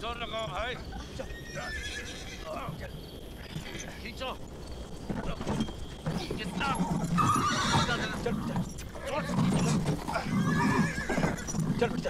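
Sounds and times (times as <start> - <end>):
hooves stamping: 0.0 - 12.0
horses whinnying: 0.1 - 12.0
people's voices: 5.1 - 12.0.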